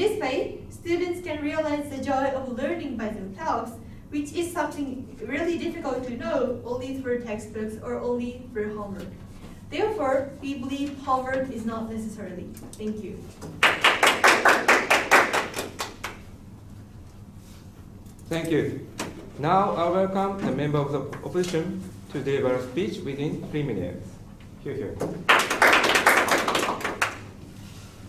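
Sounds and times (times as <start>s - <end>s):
people clapping: 13.5s - 16.3s, 25.2s - 27.3s
small group applauding: 13.5s - 16.3s, 25.2s - 27.4s.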